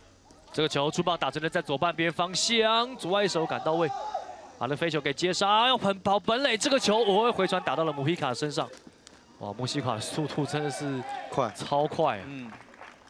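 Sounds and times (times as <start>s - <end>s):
man talking rapidly: 0.5s - 4.0s, 4.6s - 8.7s, 9.4s - 12.5s.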